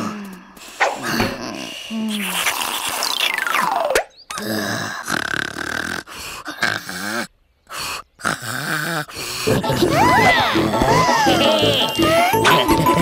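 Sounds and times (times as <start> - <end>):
cartoon grunting and growling: 0.9 - 13.0.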